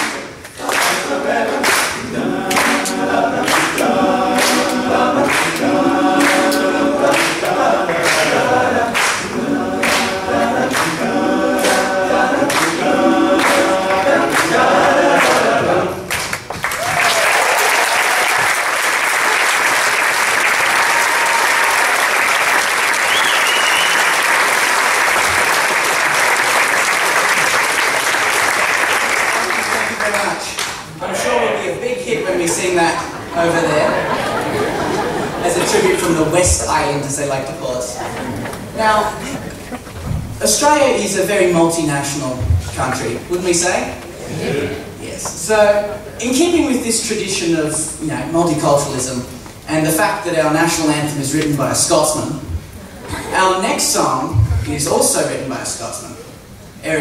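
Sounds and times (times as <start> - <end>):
men's chorus singing a cappella: 0.6 - 16.2
audience applause: 15.2 - 30.6.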